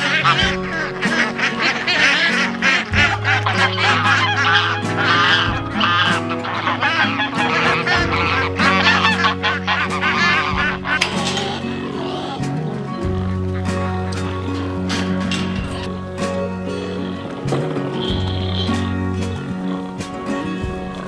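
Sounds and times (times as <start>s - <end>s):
slow background music: 0.0s - 21.0s
waterfowl honking: 0.0s - 21.0s.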